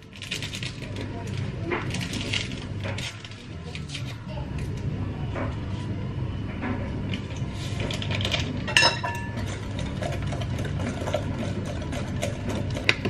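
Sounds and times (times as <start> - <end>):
kitchen appliance motor hum: 0.0 - 13.0.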